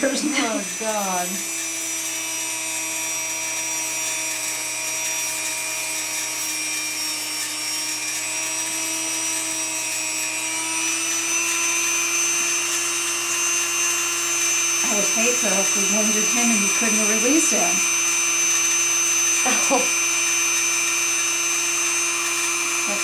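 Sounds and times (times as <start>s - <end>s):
rotary tool grinding: 0.0s - 23.0s.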